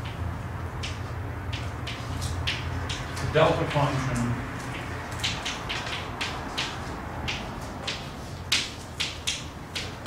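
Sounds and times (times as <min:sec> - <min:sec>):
chalk tapping on a blackboard: 0:00.0 - 0:03.2, 0:04.6 - 0:10.0.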